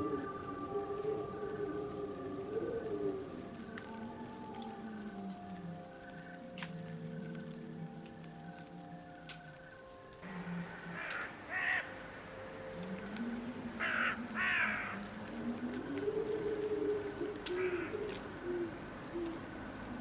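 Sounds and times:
low wavering tone: 0.0 - 20.0
crow cawing: 10.9 - 11.9, 13.8 - 15.1, 17.4 - 18.2.

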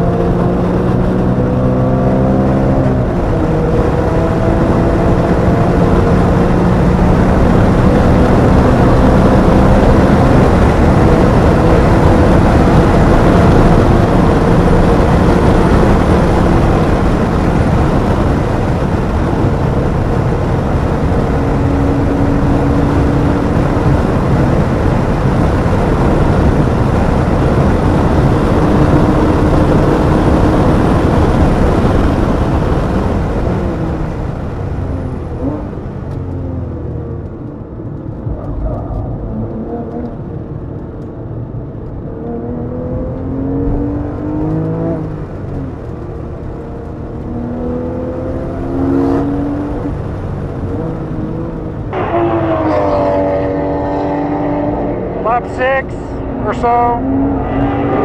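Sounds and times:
car engine revving: 0.0 - 58.0
wind and road noise: 0.0 - 58.0.

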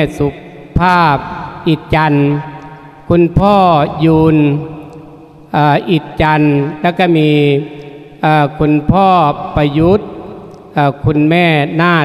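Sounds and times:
man speaking into a microphone: 10.8 - 12.0.

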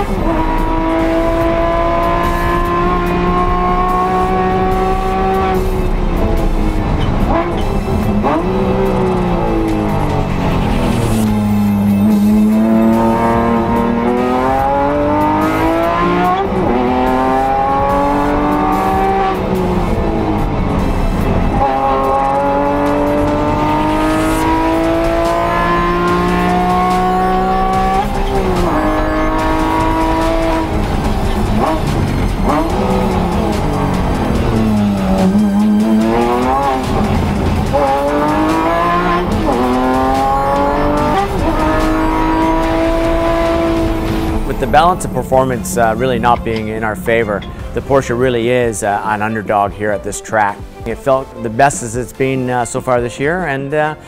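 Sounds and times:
race car engine revving: 0.0 - 49.8.

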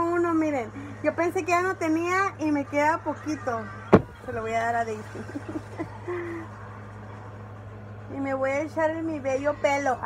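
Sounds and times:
steady low hum: 0.0 - 10.0
woman laughing softly: 5.1 - 6.6.

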